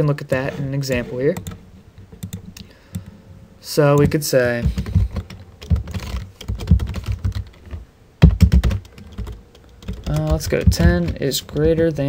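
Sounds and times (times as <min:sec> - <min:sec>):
typing on keyboard: 0:04.0 - 0:12.0.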